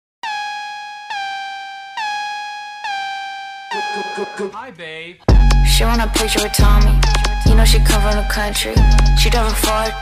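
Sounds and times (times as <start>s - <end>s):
synthesizer stab: 3.7s - 4.6s.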